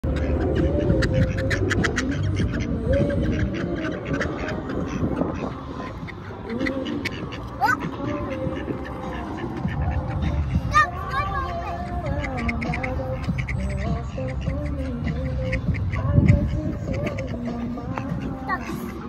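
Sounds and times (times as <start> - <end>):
ducks quacking: 0.0 - 19.0.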